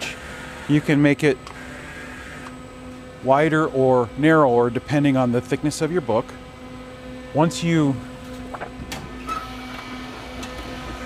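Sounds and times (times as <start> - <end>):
electrical hum of binder: 0.0 - 11.0.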